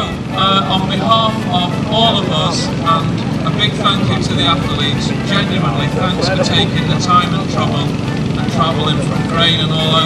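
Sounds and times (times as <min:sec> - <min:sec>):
man speaking into a microphone: 0:00.0 - 0:10.0
steady low rumble: 0:00.0 - 0:10.0.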